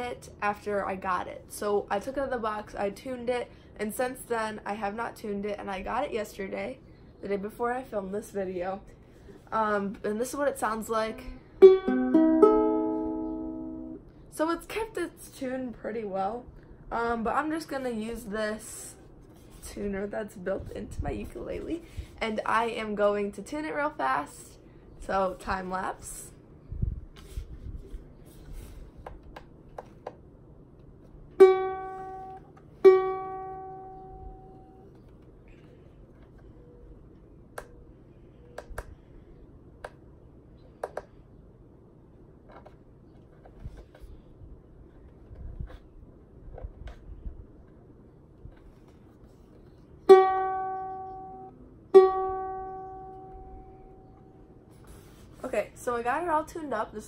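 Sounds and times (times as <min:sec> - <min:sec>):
ukulele strings plucked: 0:11.6 - 0:14.0, 0:31.4 - 0:34.8, 0:50.1 - 0:54.3.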